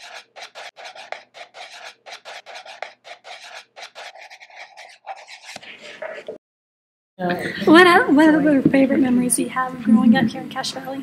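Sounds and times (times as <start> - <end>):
marker pen scratching on board: 0.0 - 6.4.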